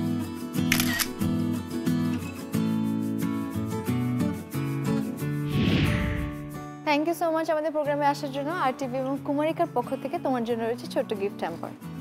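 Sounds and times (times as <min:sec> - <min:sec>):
strummed acoustic guitar music: 0:00.0 - 0:05.4
camera shutter click: 0:00.7 - 0:01.3.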